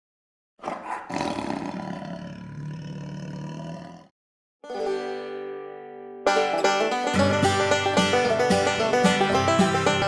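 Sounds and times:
tiger roaring: 0.6s - 4.1s.

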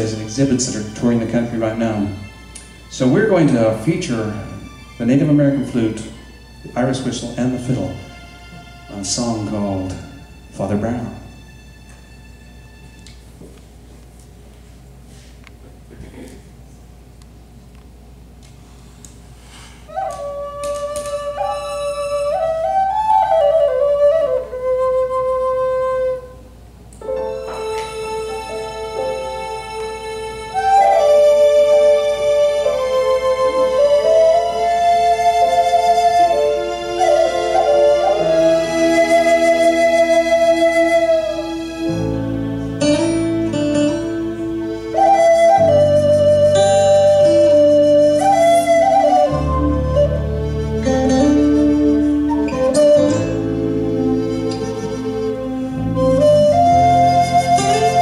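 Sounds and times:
wooden flute melody: 0.0s - 13.6s, 19.5s - 58.0s.

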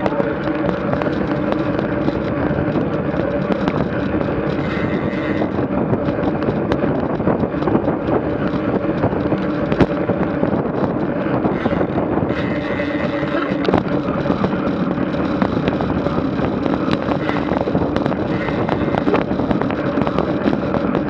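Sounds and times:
short clicks and rattles: 0.0s - 21.0s
tyres humming on asphalt: 0.0s - 21.0s
wind on microphone: 0.0s - 21.0s.

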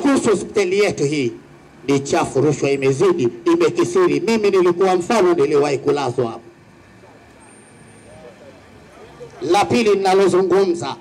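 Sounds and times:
distant vehicle noise: 0.0s - 11.0s
murmur of voices: 6.0s - 11.0s.

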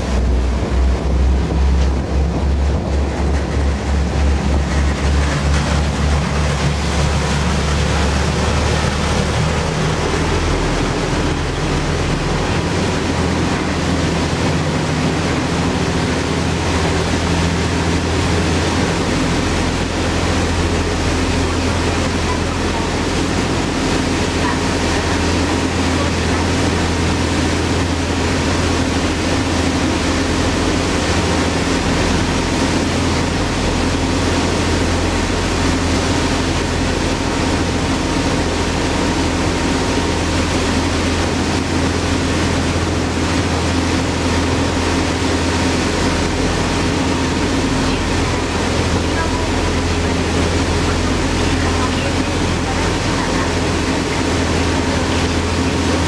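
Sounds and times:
boat engine drone: 0.0s - 56.0s
water churning in wake: 0.0s - 56.0s.

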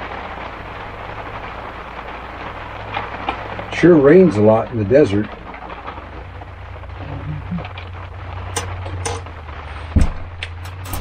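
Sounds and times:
rain pattering on a roof: 0.0s - 11.0s
heavy thump: 9.9s - 11.0s.

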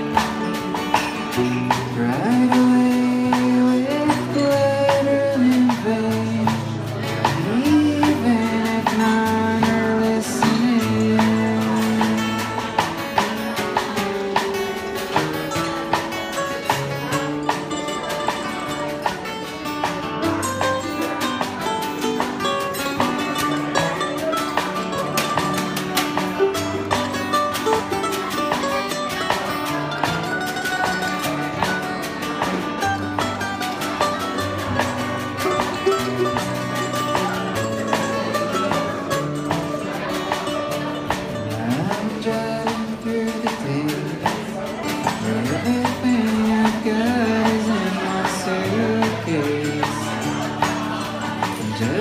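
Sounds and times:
bass notes: 0.0s - 52.0s
mandolin picking fast lead: 0.0s - 52.0s
strummed acoustic guitar: 0.0s - 52.0s.

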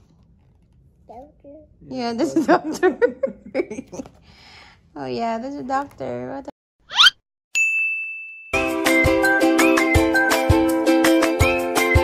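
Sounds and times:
bright ding: 7.5s - 8.7s
music: 8.6s - 12.0s.

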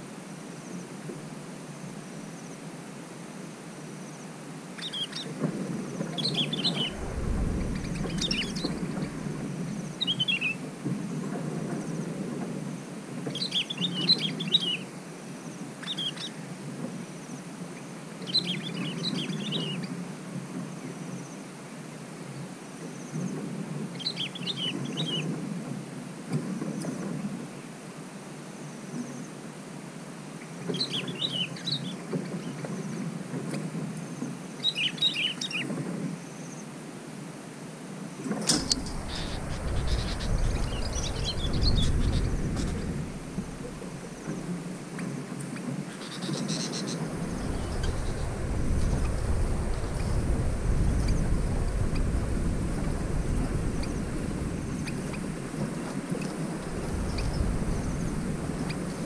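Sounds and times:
deep rumble: 6.5s - 10.0s, 38.6s - 44.7s, 47.1s - 55.5s
bulbuls calling: 38.6s - 44.6s.

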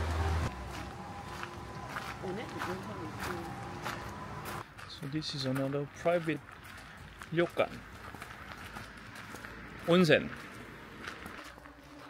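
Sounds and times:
footsteps on gravel: 0.2s - 12.0s.

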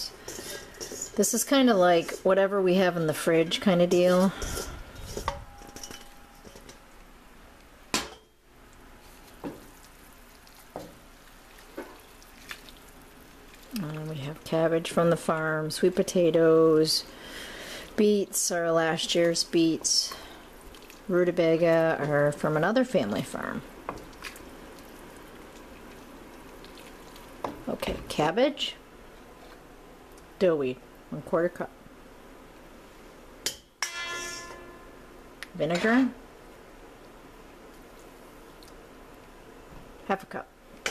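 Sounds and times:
kitchenware clinking on pot: 3.9s - 6.8s, 33.5s - 34.8s.

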